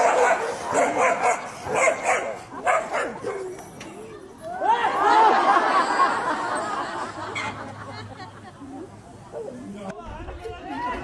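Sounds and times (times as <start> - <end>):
dogs barking: 0.0 - 3.6.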